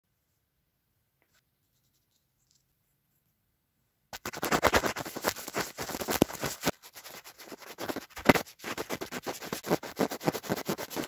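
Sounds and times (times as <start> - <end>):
fingers handling cotton swabs: 4.2 - 11.0.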